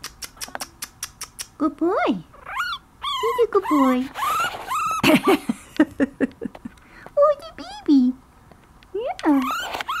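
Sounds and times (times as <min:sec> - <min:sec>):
puppy crying: 0:02.3 - 0:05.4, 0:09.3 - 0:10.0.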